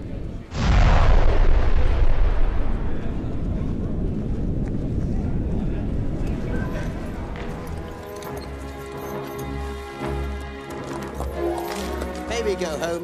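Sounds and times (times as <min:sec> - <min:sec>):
deep rumble of collapsing rock: 0:00.2 - 0:07.8.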